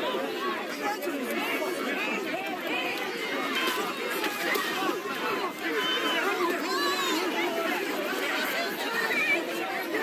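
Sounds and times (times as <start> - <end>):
crowd talking and calling out: 0.0 - 10.0.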